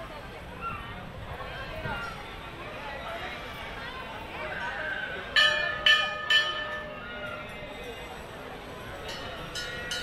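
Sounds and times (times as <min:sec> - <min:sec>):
temple bell ringing: 0:04.6 - 0:10.0.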